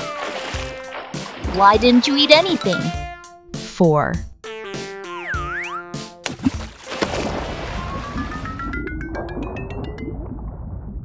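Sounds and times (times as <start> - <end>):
light children's music: 0.0 - 3.3.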